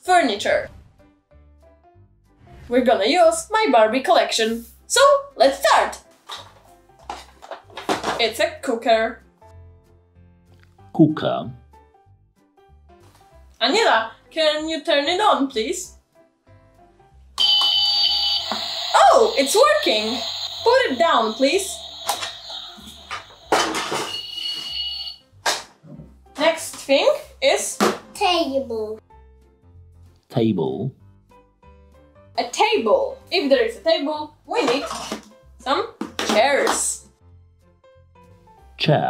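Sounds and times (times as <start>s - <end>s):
plastic toy set down on table: 6.3s - 8.2s
toy high steady beeping: 17.4s - 25.2s.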